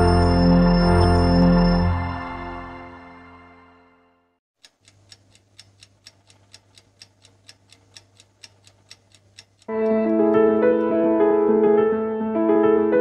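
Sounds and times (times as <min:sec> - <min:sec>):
piano music: 0:00.0 - 0:04.3, 0:09.7 - 0:13.0
clock ticking: 0:04.6 - 0:10.0.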